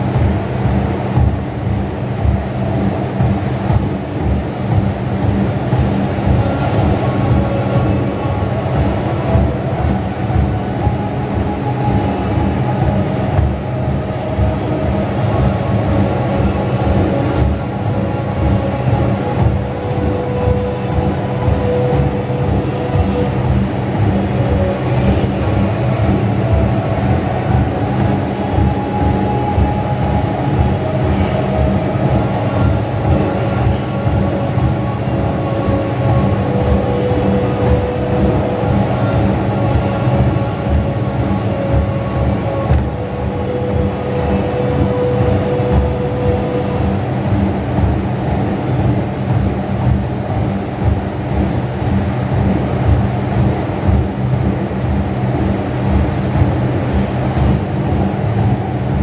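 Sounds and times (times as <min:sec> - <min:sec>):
cardio machine rumbling: 0:00.0 - 0:59.0.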